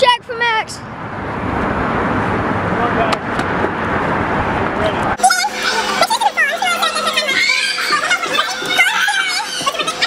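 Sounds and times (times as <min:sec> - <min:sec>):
road traffic noise: 0:00.0 - 0:10.0
faint voices: 0:04.8 - 0:10.0.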